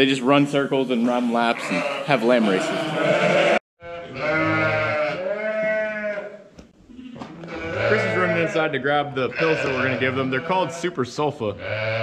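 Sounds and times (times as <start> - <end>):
sheep bleating: 0.2 - 12.0.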